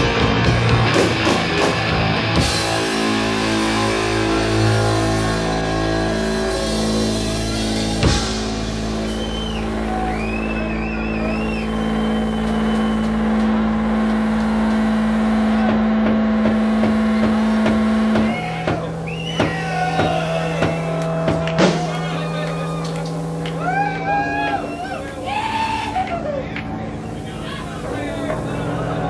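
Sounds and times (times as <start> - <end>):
amplified guitar and bass drone: 0.0 - 29.0
high feedback tones: 2.7 - 29.0.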